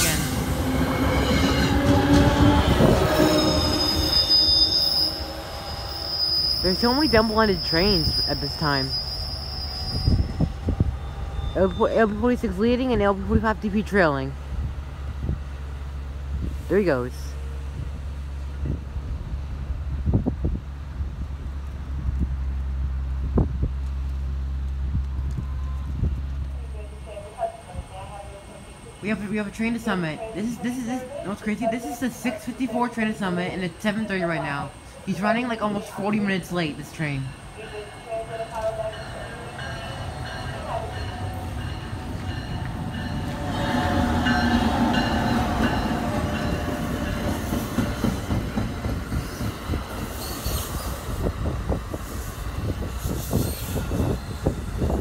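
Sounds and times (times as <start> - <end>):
train wheels rumbling on rail: 0.0 - 16.7, 29.1 - 55.0
electric locomotive hum: 0.0 - 55.0
wind buffeting microphone: 0.3 - 3.7, 9.7 - 13.8, 14.4 - 16.6, 17.6 - 26.5, 40.1 - 55.0.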